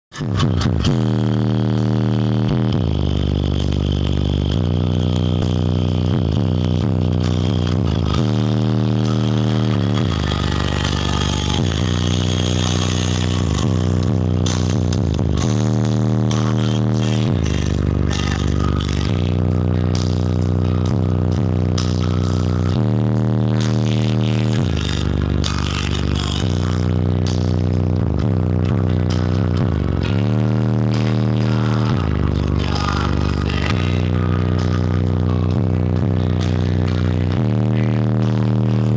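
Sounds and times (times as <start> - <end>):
bass-heavy music through car speakers: 0.1 - 38.9.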